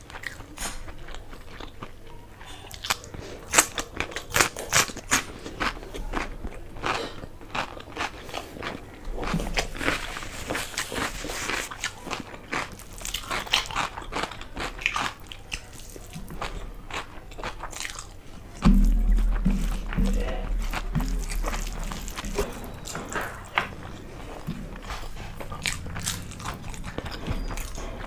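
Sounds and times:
crunching and chewing cucumber: 0:00.0 - 0:28.0.

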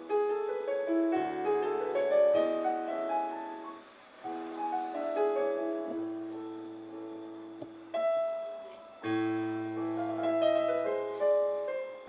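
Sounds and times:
slow classical piano: 0:00.0 - 0:12.0.

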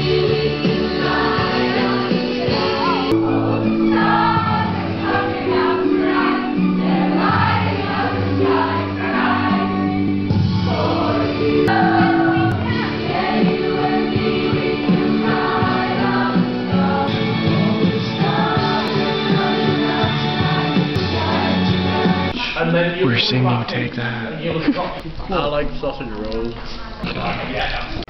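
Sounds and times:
choir singing: 0:00.0 - 0:22.4
musical accompaniment: 0:00.0 - 0:22.5.

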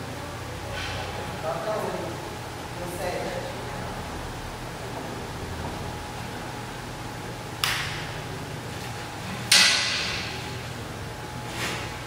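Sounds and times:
fan hum: 0:00.0 - 0:12.0
hands slapping steel bar: 0:07.6 - 0:08.0.

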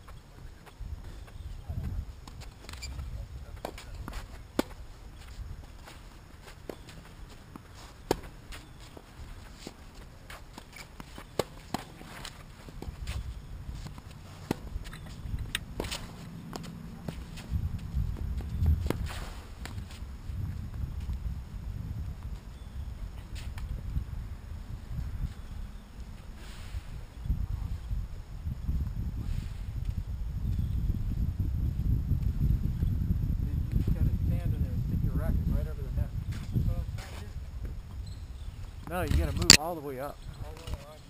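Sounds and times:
tennis ball struck by rackets: 0:03.6 - 0:04.8, 0:13.8 - 0:17.4.

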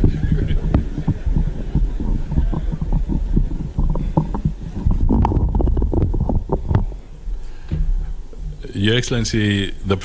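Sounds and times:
microphone being handled: 0:00.0 - 0:08.7.

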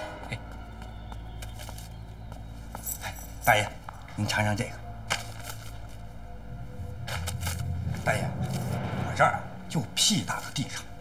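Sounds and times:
footsteps on tiled floor: 0:00.0 - 0:04.1.

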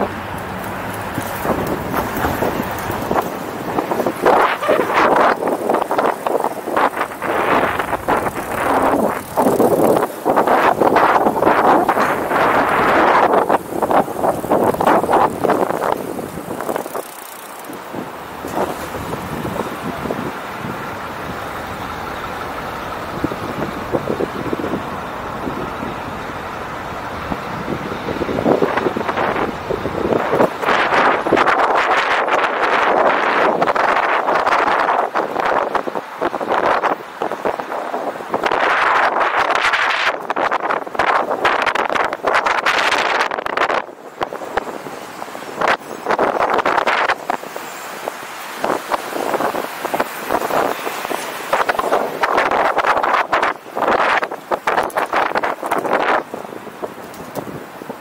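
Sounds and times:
bicycle road noise: 0:00.0 - 0:58.0
passing traffic: 0:00.0 - 0:58.0
wind buffeting microphone: 0:00.0 - 0:58.0.

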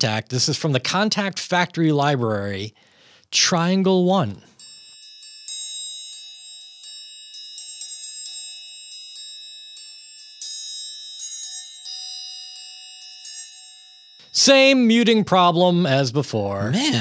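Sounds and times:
triangle struck ringing: 0:04.6 - 0:14.7.

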